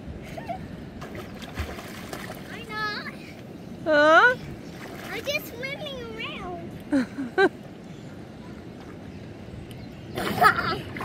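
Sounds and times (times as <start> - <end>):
water sloshing and splashing: 1.0 - 3.5, 4.5 - 5.9.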